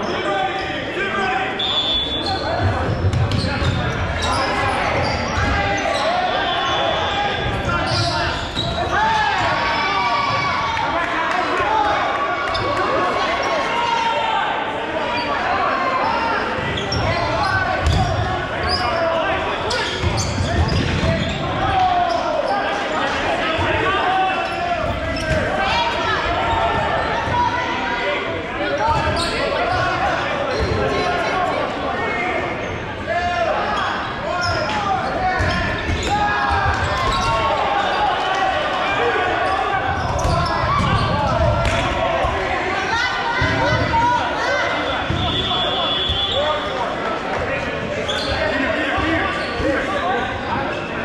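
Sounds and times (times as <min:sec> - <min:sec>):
players shouting: 0:00.0 - 0:51.0.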